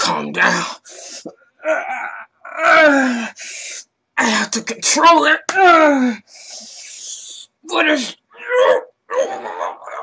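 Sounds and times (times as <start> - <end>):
man groaning and snarling: 1.6 - 3.4.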